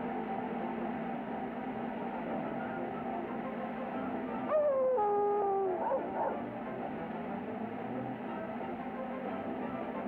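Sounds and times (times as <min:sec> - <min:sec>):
background music: 0:00.0 - 0:10.0
cartoon dog whining howl: 0:04.5 - 0:06.4.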